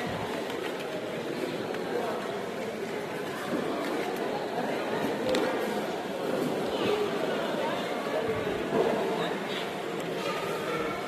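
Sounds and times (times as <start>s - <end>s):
hubbub of many voices: 0.0s - 11.0s.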